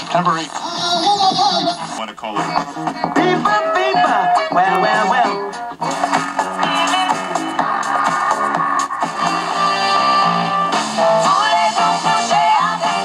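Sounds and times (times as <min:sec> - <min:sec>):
guitar music from small speaker: 0:00.1 - 0:13.0.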